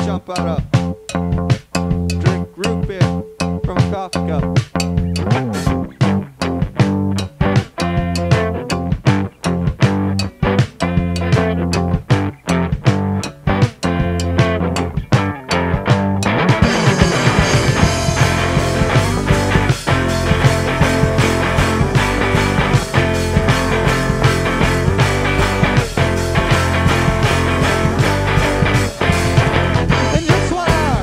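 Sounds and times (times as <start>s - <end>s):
bass guitar: 0.0s - 31.0s
electric guitar: 0.0s - 31.0s
steady drum beat: 0.0s - 31.0s.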